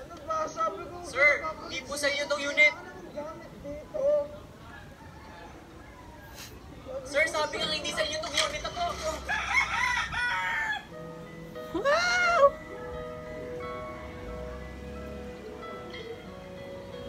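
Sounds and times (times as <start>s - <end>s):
rooster crowing: 4.7s - 6.3s, 9.1s - 11.0s
soft music from a laptop: 7.6s - 17.0s.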